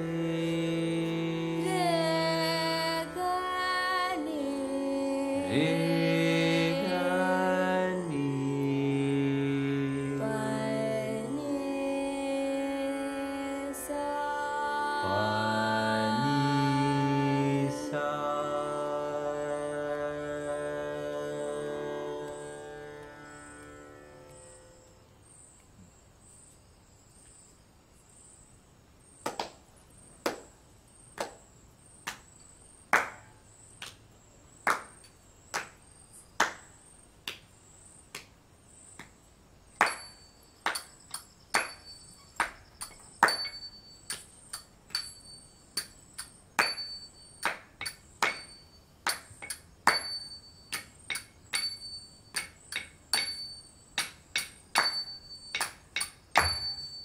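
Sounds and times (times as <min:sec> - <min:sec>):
small hand cymbals struck: 0:39.8 - 0:57.0.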